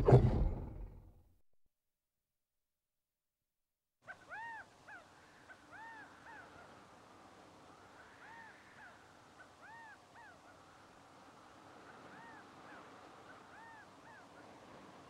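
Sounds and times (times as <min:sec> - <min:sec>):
faint birdsong: 0:04.1 - 0:15.0.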